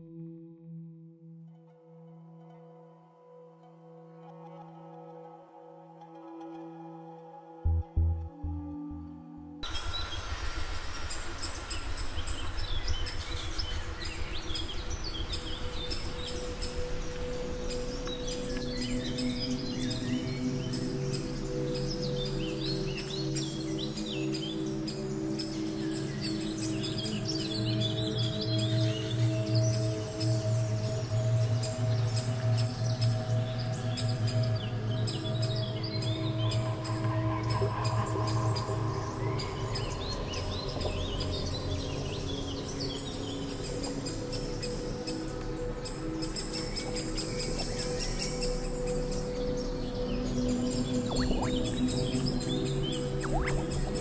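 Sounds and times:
ambient droning music: 0:00.0 - 0:54.0
small birds chirping: 0:39.2 - 0:54.0.

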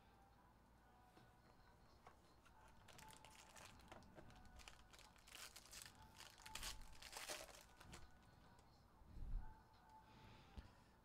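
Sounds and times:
wrapper tearing and crinkling: 0:02.8 - 0:08.1.

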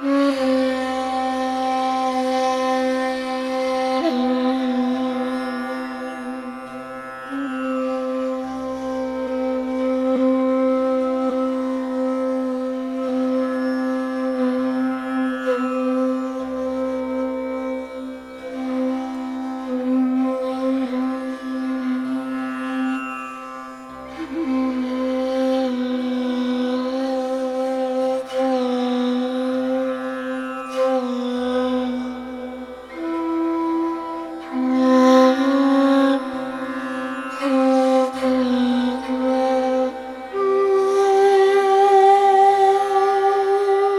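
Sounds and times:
ney flute long held notes: 0:00.0 - 0:43.9
tanpura drone: 0:00.0 - 0:43.9.

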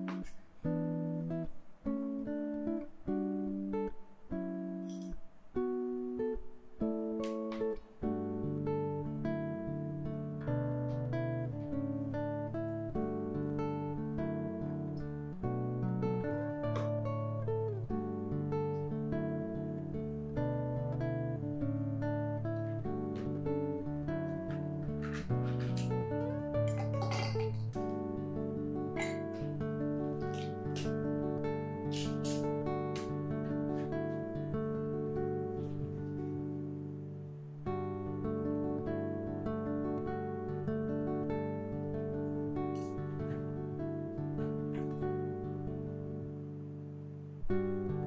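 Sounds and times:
acoustic guitar music: 0:00.0 - 0:48.0
ice cubes clinking in glass: 0:26.7 - 0:27.6.

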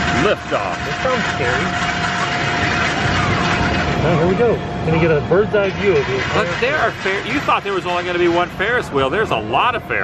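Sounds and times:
chairlift machinery hum and rumble: 0:00.0 - 0:10.0
high steady whine: 0:00.0 - 0:10.0.

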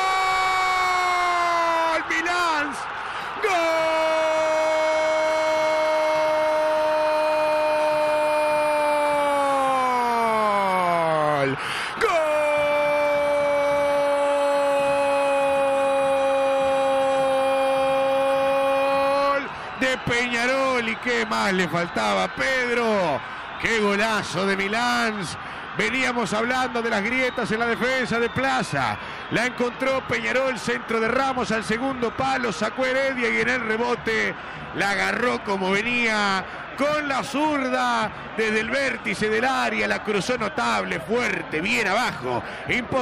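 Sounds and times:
man shouting goal cry: 0:00.0 - 0:23.2.

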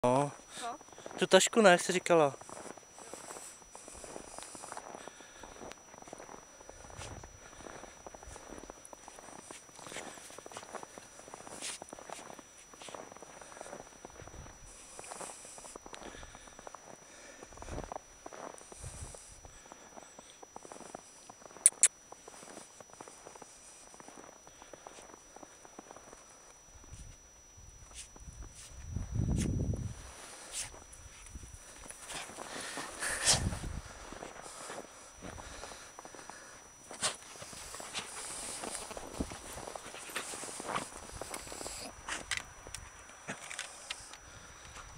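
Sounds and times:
footsteps crunching in snow: 0:02.3 - 0:27.2, 0:27.8 - 0:42.3
sharp clicks: 0:21.6 - 0:22.0.

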